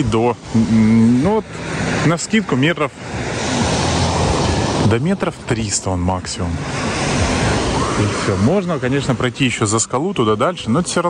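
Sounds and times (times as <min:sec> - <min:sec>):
waves washing onto pebble beach: 0:00.0 - 0:11.0.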